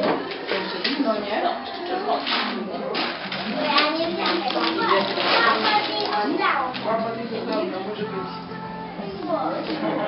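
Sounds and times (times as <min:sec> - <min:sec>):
children talking and calling out: 0:03.3 - 0:09.7.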